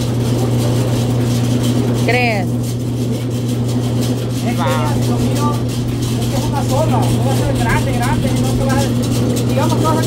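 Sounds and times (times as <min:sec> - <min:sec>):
grinding mill humming: 0:00.0 - 0:10.0.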